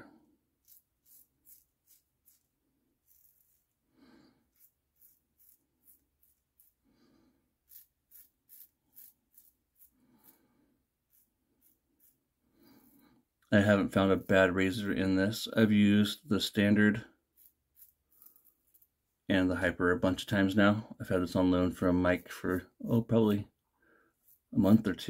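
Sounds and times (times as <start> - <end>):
razor scraping stubble: 0.6 - 3.8, 4.4 - 6.9, 7.6 - 12.9, 16.1 - 19.0, 24.1 - 25.0.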